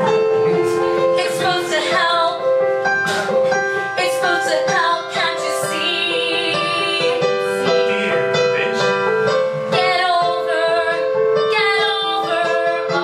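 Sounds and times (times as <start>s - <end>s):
piano chords: 0.0s - 13.0s
woman singing: 1.1s - 2.6s, 3.9s - 7.6s, 9.7s - 13.0s.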